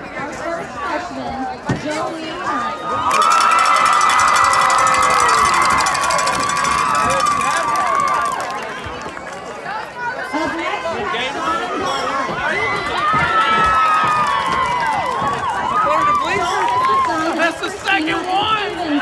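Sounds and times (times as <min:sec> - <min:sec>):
crowd chatter and shouts: 0:00.0 - 0:19.0
crowd cheering: 0:02.6 - 0:19.0.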